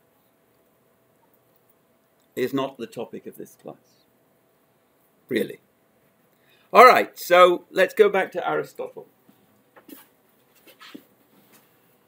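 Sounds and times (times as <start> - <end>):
faint breath sounds: 6.4 - 6.8.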